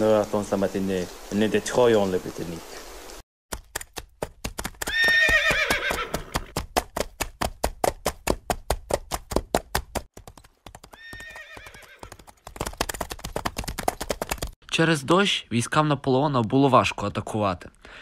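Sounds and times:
hooves clip-clopping: 0:03.5 - 0:14.6
horse whinnying: 0:04.8 - 0:06.5, 0:10.9 - 0:12.2.

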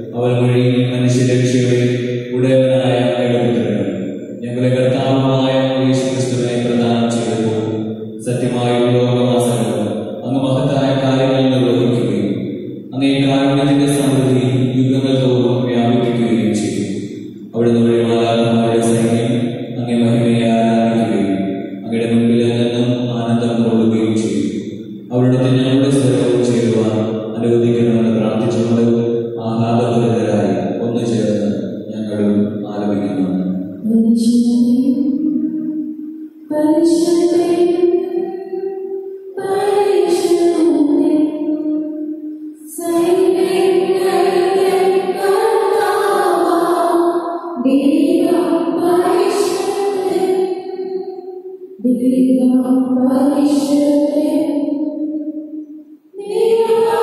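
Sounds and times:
man chanting a prayer: 0:00.0 - 0:16.9, 0:17.6 - 0:24.5, 0:25.1 - 0:33.4.

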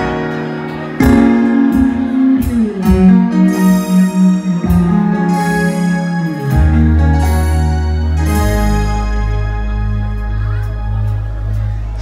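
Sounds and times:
guitar notes: 0:00.0 - 0:12.0
keyboard notes: 0:00.0 - 0:12.0.

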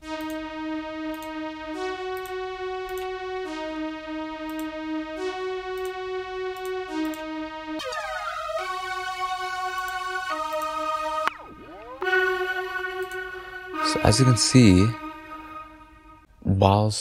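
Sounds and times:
falling pitch sweep: 0:00.0 - 0:16.3
synthesizer held note: 0:00.0 - 0:16.3.

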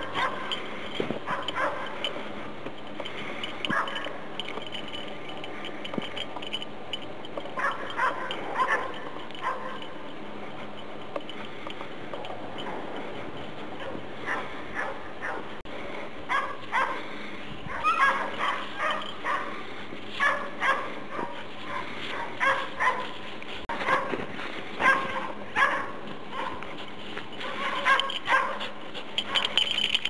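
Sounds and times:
dog barking and yipping: 0:00.0 - 0:00.6, 0:01.2 - 0:02.1, 0:03.7 - 0:04.2, 0:07.6 - 0:10.0, 0:13.8 - 0:15.5, 0:16.3 - 0:17.1, 0:17.7 - 0:24.2, 0:24.8 - 0:26.7, 0:27.4 - 0:29.7
dog digging in snow: 0:18.2 - 0:29.6.

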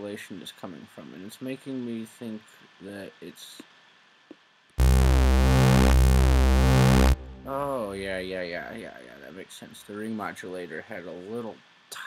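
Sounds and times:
pulsing synthesizer note: 0:04.8 - 0:08.8.

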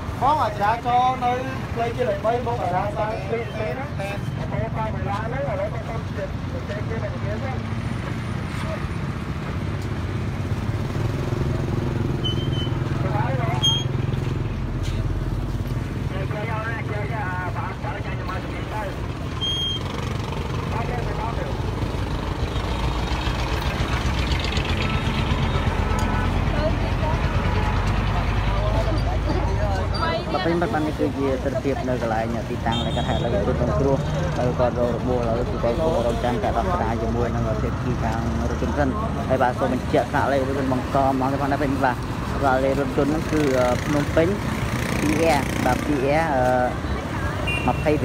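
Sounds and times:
people talking in crowd: 0:00.0 - 0:09.6, 0:15.8 - 0:48.0
passing traffic: 0:00.0 - 0:48.0.

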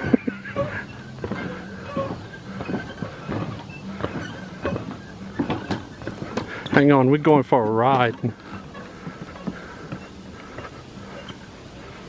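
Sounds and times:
footsteps on walkway: 0:00.0 - 0:12.0.

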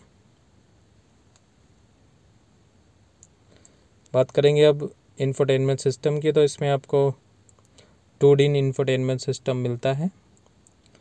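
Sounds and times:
faint small clicks: 0:07.4 - 0:07.9, 0:10.3 - 0:11.0.

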